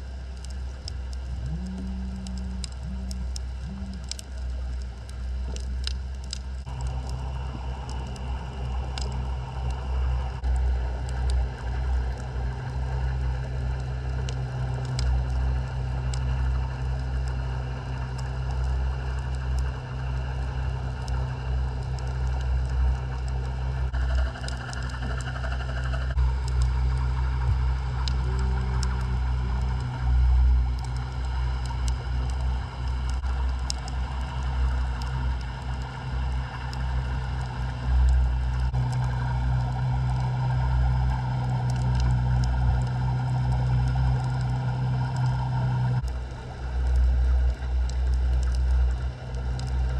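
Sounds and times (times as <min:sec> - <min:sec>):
faint hums: 0:00.0 - 0:49.9
underwater low rumble: 0:00.0 - 0:49.9
faint clicks: 0:00.3 - 0:07.2, 0:07.9 - 0:12.3, 0:13.3 - 0:49.9.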